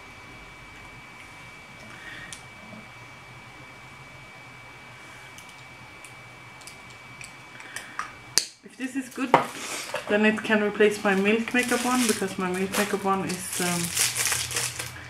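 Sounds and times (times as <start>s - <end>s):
thin high whine: 0.0s - 15.0s.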